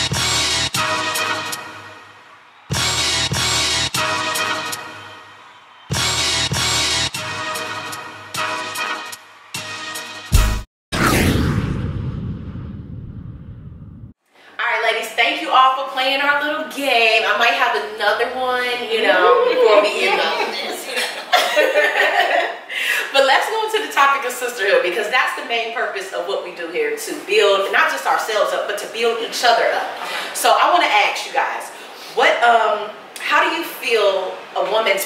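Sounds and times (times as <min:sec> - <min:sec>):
deep boom rumbling tail: 0:10.9 - 0:14.2
women talking: 0:14.6 - 0:22.4, 0:23.0 - 0:35.0.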